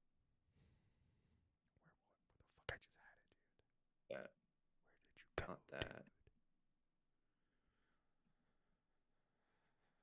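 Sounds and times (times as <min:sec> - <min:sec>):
faint whispering voice: 0:01.7 - 0:06.2.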